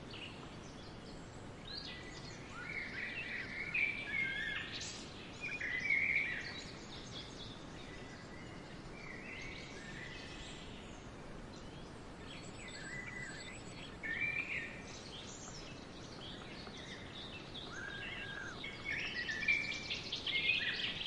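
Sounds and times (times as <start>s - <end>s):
outdoor background hiss: 0.0s - 21.0s
songbirds chirping and singing: 0.0s - 21.0s.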